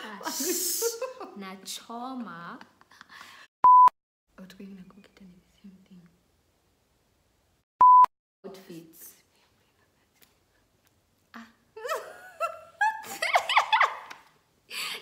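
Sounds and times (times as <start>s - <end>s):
censor bleeps: 3.6s - 4.0s, 7.8s - 8.1s.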